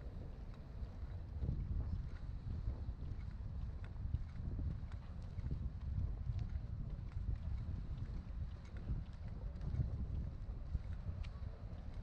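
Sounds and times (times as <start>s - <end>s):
faint footsteps on pier deck: 0.0s - 12.0s
wind buffeting microphone: 0.0s - 12.0s.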